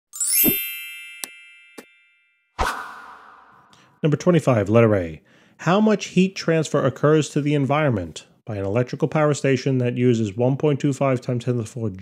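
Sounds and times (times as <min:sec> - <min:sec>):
bright ringing chime: 0:00.1 - 0:02.6
rising sweep: 0:02.6 - 0:03.8.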